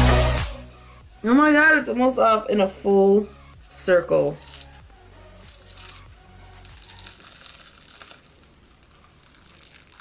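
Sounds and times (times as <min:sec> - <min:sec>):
face mask crackling and tearing: 0:04.4 - 0:10.0.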